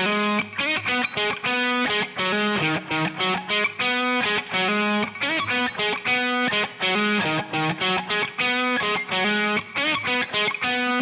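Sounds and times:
overdriven electric guitar: 0:00.0 - 0:11.0.

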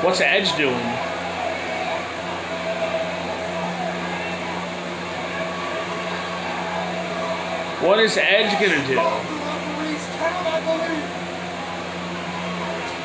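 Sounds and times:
faint voices: 0:00.0 - 0:13.0
low machine hum: 0:00.0 - 0:13.0.

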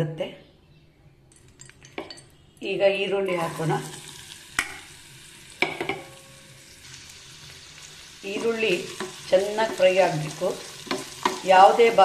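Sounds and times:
onions sizzling in hot fat: 0:03.3 - 0:12.0.

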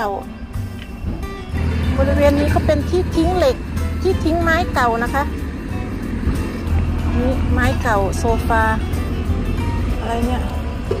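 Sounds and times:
background music: 0:00.0 - 0:11.0
low rumble: 0:01.0 - 0:11.0
woman speaking: 0:01.8 - 0:05.3, 0:07.1 - 0:08.9.

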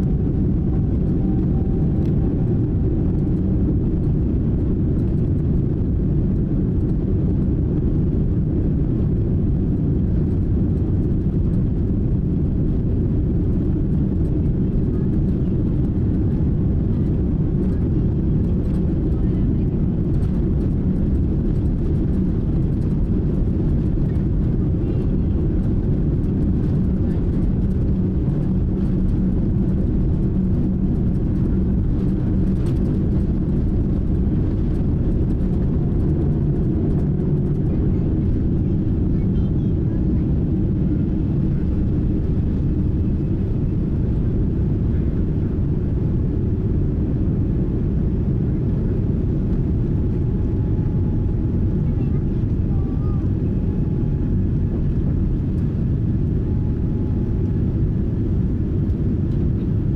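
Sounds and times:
jet engines rumbling in cabin: 0:00.0 - 0:59.9.

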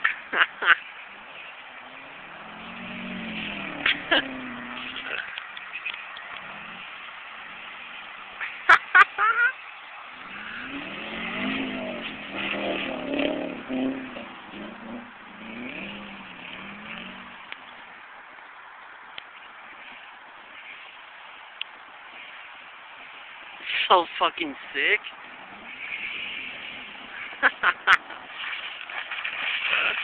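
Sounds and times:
distant car engine revving: 0:00.0 - 0:18.0, 0:24.3 - 0:30.0.

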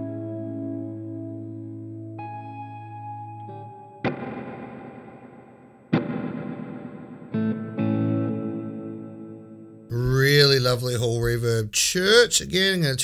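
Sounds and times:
electric guitar chords with reverb: 0:00.0 - 0:09.9.

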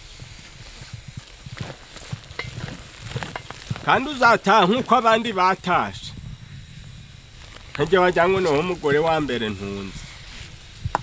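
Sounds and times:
gas burner hiss: 0:00.0 - 0:11.0
wooden stick knocking and scraping pot: 0:01.6 - 0:05.0.

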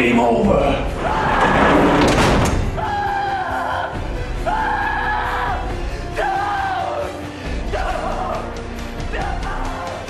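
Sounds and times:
dramatic film score music: 0:00.0 - 0:10.0.

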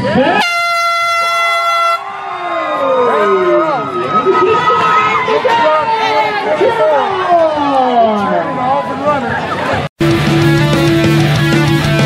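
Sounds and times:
air horn blast: 0:00.4 - 0:02.0.

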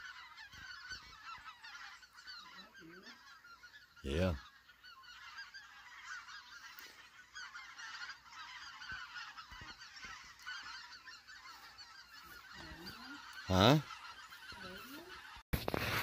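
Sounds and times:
geese calling overhead: 0:00.0 - 0:16.0.

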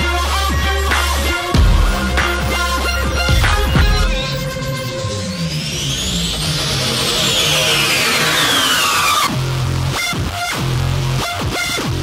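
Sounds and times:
rising and falling sweep: 0:00.0 - 0:10.2
electronic dance music beat: 0:00.0 - 0:12.0.

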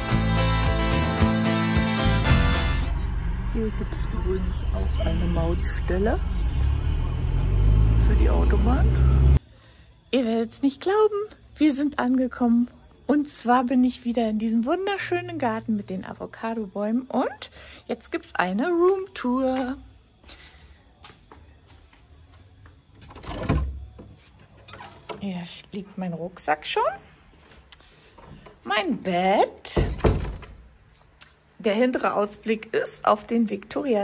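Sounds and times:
van engine and road rumble: 0:00.0 - 0:09.4
door creaking open: 0:22.9 - 0:25.3, 0:29.7 - 0:30.7.

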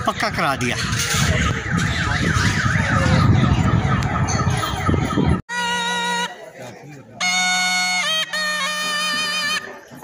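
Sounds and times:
warbling electronic alarm: 0:01.2 - 0:05.4.

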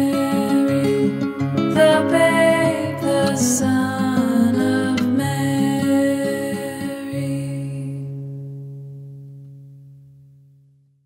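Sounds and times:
acoustic guitar chord ringing: 0:00.0 - 0:11.0.

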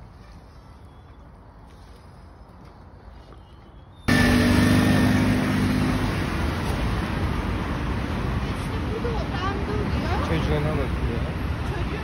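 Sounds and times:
road noise: 0:00.0 - 0:12.0
car engines running: 0:04.1 - 0:12.0
steady engine hum: 0:04.1 - 0:12.0.

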